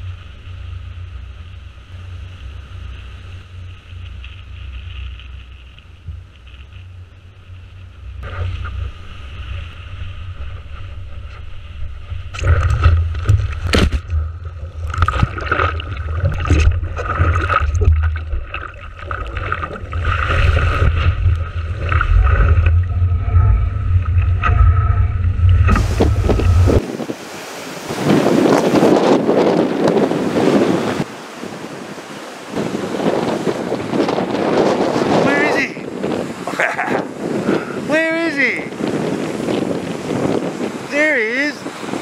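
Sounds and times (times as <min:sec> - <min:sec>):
breaking surf: 0:00.0 - 0:42.0
water rushing past board: 0:00.0 - 0:42.0
wind buffeting microphone: 0:08.0 - 0:42.0.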